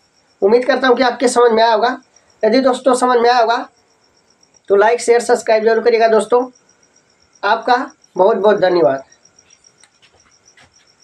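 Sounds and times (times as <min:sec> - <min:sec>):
cricket chirping: 0:00.0 - 0:11.0.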